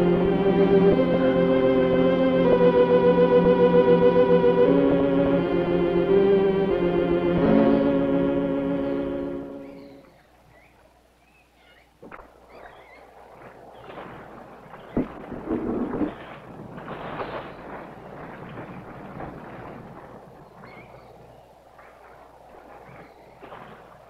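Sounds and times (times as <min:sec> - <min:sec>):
orchestral string chords: 0:00.0 - 0:10.0
rowboat splashing and knocking: 0:12.0 - 0:24.0.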